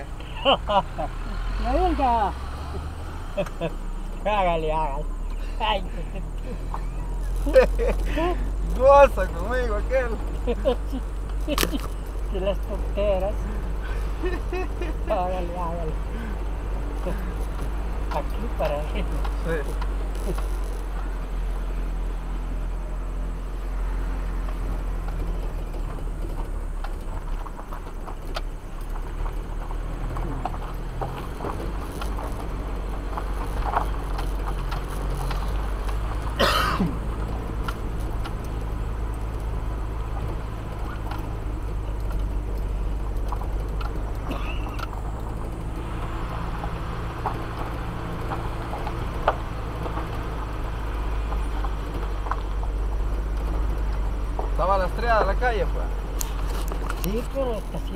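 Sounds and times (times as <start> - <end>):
vehicle engine running: 0.0 - 57.9
knocks and rattles from bumps: 5.9 - 57.9.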